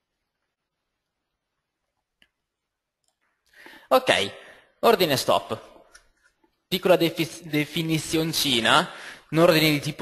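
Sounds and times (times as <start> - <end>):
man speaking: 3.9 - 5.9, 6.7 - 10.0.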